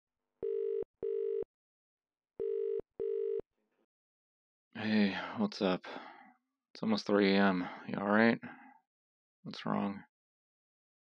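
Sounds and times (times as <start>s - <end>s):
telephone ringback tone: 0.4s - 1.5s, 2.4s - 3.4s.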